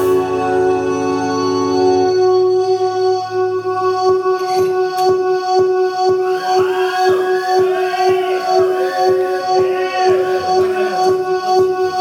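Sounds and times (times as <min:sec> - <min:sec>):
held drone note: 0:00.0 - 0:12.0
sliding wavering pitches: 0:00.0 - 0:12.0
steady electronic beat: 0:00.0 - 0:12.0.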